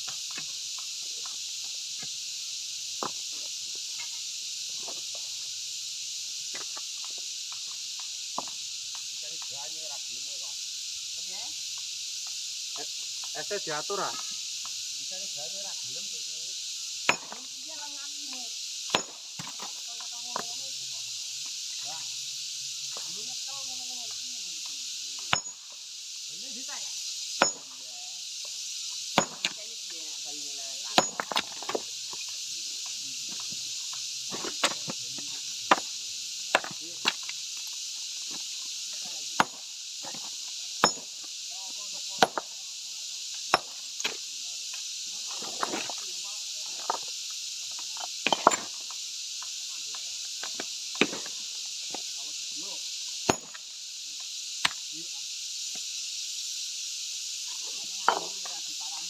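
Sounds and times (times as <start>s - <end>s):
steady high hiss: 0.0s - 59.0s
hammer striking stone: 17.1s - 17.5s, 18.9s - 19.6s, 25.3s - 25.6s, 27.4s - 27.8s, 29.2s - 29.6s, 30.9s - 31.8s, 36.5s - 37.2s, 39.4s - 41.1s, 42.2s - 42.5s, 43.5s - 43.8s, 48.2s - 48.8s, 53.3s - 53.6s, 58.1s - 58.3s.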